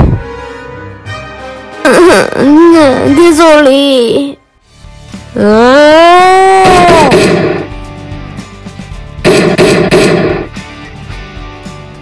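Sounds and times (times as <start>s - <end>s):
background music: 0.0s - 12.0s
gunfire bursts: 6.9s - 7.7s, 9.2s - 10.5s.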